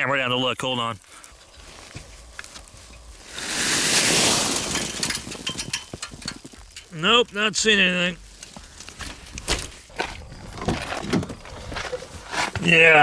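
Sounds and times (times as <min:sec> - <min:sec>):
knocks and crackles on dry grass: 0:00.3 - 0:13.0
loud rustling scrape: 0:01.3 - 0:05.8, 0:08.8 - 0:13.0.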